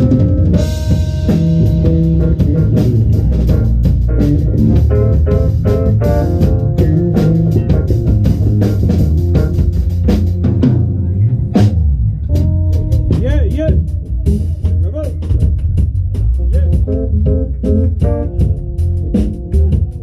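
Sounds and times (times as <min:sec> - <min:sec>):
drum kit: 0:00.0 - 0:20.0
electric bass guitar: 0:00.0 - 0:20.0
keyboard: 0:00.0 - 0:20.0.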